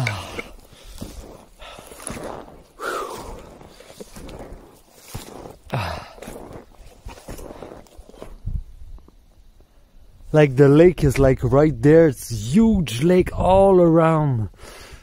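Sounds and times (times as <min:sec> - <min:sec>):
person breathing: 0:00.0 - 0:06.7, 0:14.6 - 0:15.0
footsteps crunching through snow: 0:00.5 - 0:09.2.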